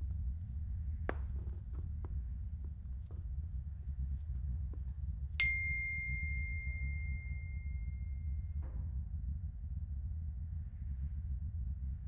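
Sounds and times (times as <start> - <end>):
low steady rumble: 0.0 - 12.0
bell-like ding: 5.4 - 8.4.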